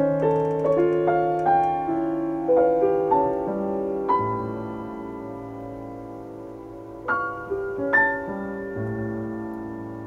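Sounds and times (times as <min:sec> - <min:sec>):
piano chord with low bass note: 0:00.0 - 0:10.0.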